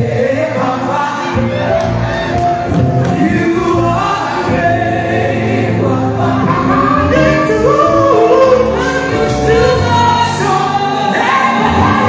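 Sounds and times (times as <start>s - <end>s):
band playing: 0.0s - 12.0s
group singing in harmony: 0.0s - 12.0s.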